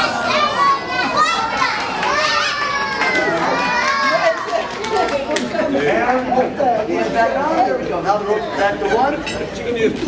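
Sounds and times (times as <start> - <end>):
children calling out: 0.0 - 5.2.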